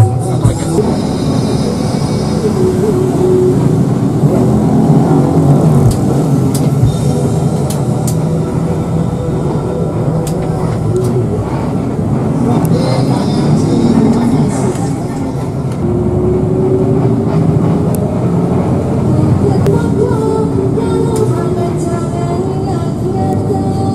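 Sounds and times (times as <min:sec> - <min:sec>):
diesel engine running: 0:00.0 - 0:23.9
road rumble: 0:00.0 - 0:23.9.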